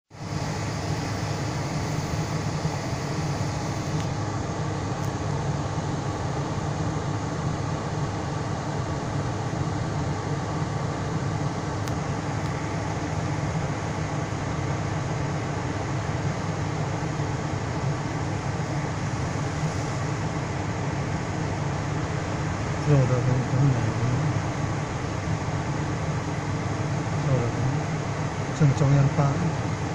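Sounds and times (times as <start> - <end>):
car engine idling: 0.1 - 29.5
air conditioning running: 0.1 - 29.9.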